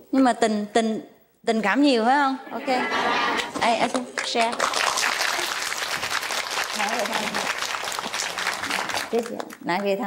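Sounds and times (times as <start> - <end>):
audience applause: 4.1 - 9.6.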